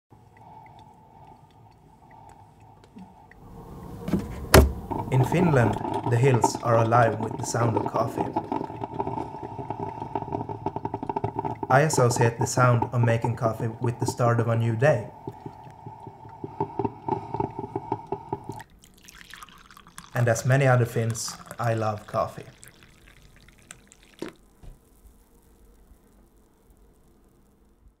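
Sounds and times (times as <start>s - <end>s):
coffee dripping into a mug: 0.2s - 3.9s, 4.8s - 27.1s.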